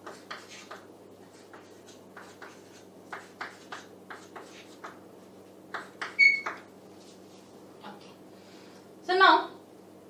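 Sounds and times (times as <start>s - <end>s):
chalk scratching on chalkboard: 0.0s - 5.0s.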